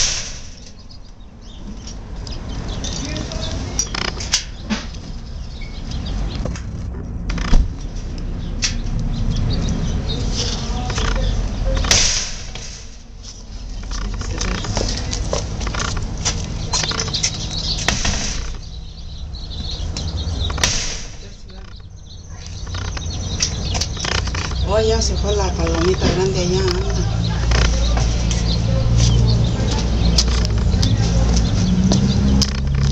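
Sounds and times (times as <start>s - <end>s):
steady low rumble: 0.0s - 32.9s.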